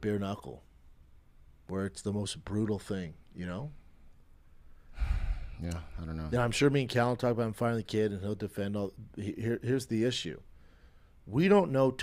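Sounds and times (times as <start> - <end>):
man sighing into microphone: 5.0 - 6.0.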